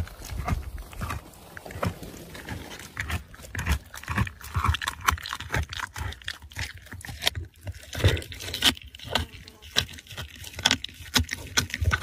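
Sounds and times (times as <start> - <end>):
teeth crunching on bone: 0.0 - 12.0.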